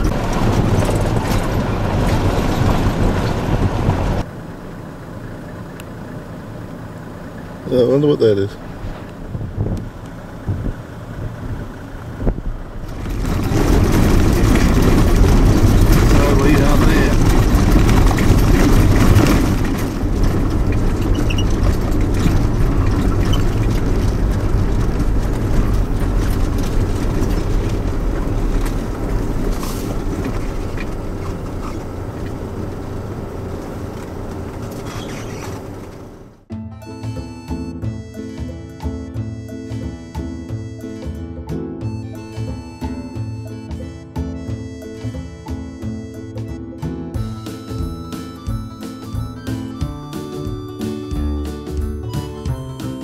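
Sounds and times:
vehicle engine and tyres rumbling: 0:00.0 - 0:53.0.

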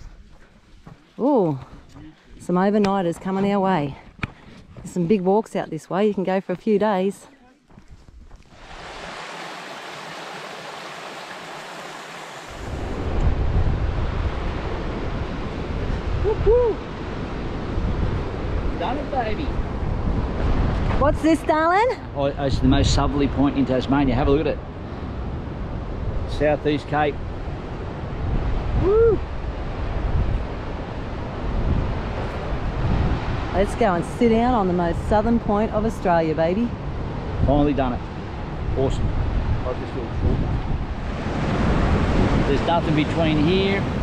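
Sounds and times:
creek rushing over stones: 0:08.5 - 0:13.0
surf breaking on shore: 0:08.5 - 0:21.4, 0:36.8 - 0:44.0
wind rumbling on microphone: 0:12.4 - 0:44.0.

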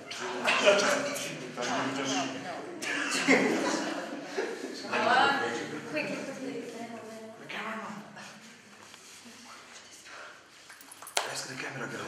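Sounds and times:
woman speaking to a group: 0:04.9 - 0:08.3.

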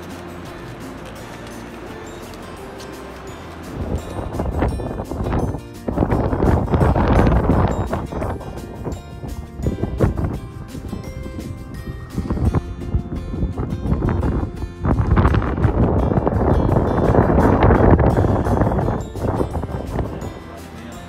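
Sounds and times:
wind buffeting microphone: 0:00.0 - 0:20.9
background music: 0:00.0 - 0:21.0.

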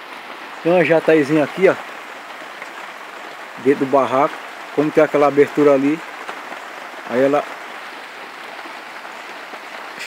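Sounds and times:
rain on a tile roof: 0:00.0 - 0:10.0.

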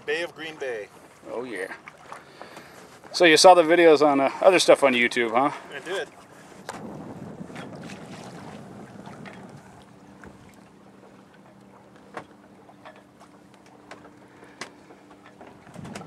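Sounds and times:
water and wind wash: 0:00.0 - 0:16.0.

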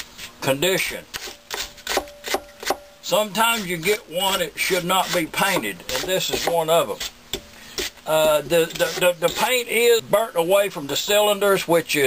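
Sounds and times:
brush scrubbing metal fins: 0:03.1 - 0:07.2, 0:07.8 - 0:09.6.

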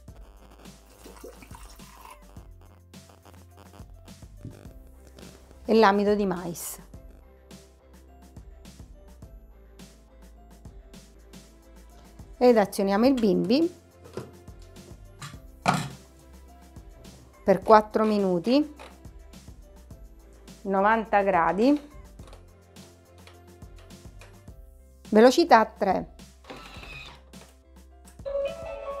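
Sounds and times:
quiet background music: 0:00.0 - 0:29.0
water poured into steel bowl: 0:00.9 - 0:02.3
lid thunk: 0:15.2 - 0:16.0.

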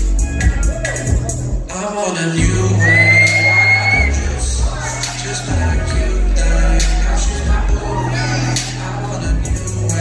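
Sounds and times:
loud live music with bass beat: 0:00.0 - 0:10.0
singing into microphones: 0:00.4 - 0:10.0.

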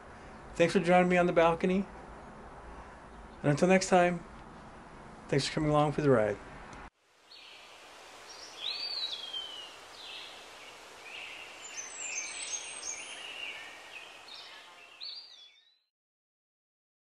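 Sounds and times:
outdoor background hiss: 0:00.0 - 0:15.7
birds chirping and whistling: 0:08.3 - 0:15.8.

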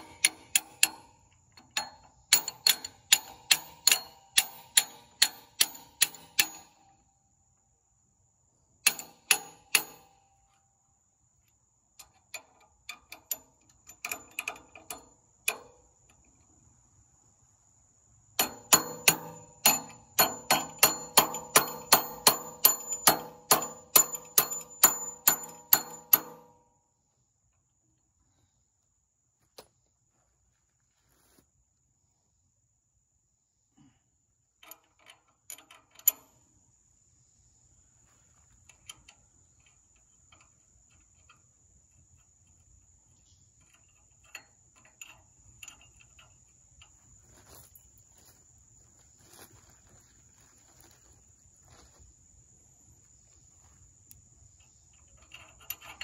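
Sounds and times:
metallic clicking with ringing tone: 0:00.0 - 0:07.4, 0:08.8 - 0:10.8, 0:11.9 - 0:16.5, 0:18.4 - 0:26.9, 0:34.6 - 0:36.7, 0:38.6 - 0:47.0, 0:54.0 - 0:56.0
handling noises: 0:47.0 - 0:52.2.

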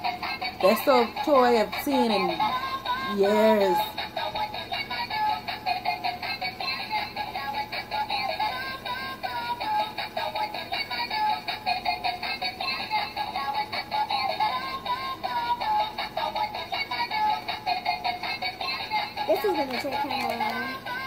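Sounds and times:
tinny electronic toy song: 0:00.0 - 0:21.0.

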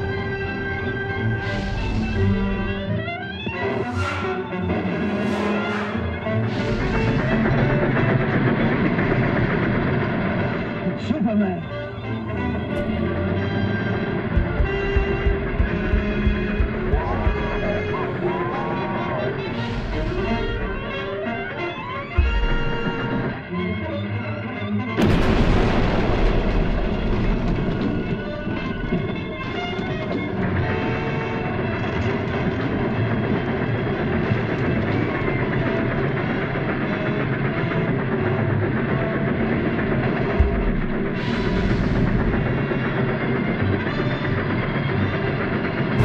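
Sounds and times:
pounding drums and timpani: 0:00.0 - 0:02.9, 0:03.6 - 0:10.8, 0:11.6 - 0:23.5, 0:25.0 - 0:46.0
dramatic orchestral cartoon music: 0:00.0 - 0:46.0
cartoon explosion blast: 0:25.0 - 0:29.8
rumbling of falling rock: 0:25.0 - 0:31.2.

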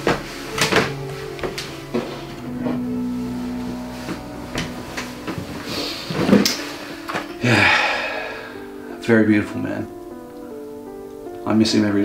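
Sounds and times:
chair scraping and rustle: 0:00.0 - 0:07.4
light knocks and footsteps: 0:00.0 - 0:07.4
soft background music: 0:00.0 - 0:12.0.

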